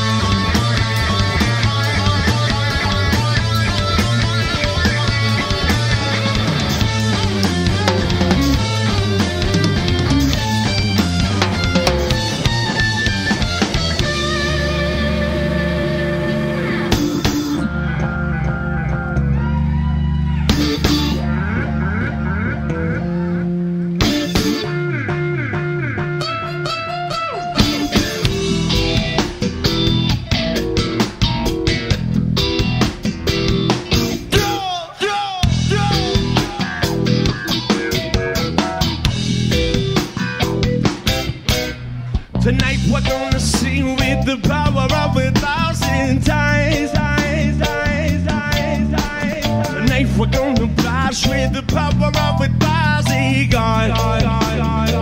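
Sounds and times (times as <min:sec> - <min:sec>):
drum kit playing busily: 0:00.0 - 0:55.0
guitar line with bent notes: 0:00.0 - 0:55.0
live reggae-rock band: 0:00.0 - 0:55.0.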